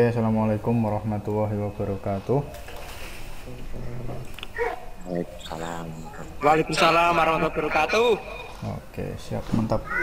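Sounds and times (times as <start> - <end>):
steady low hum and hiss: 0.0 - 10.0
voices calling over video call: 3.5 - 10.0.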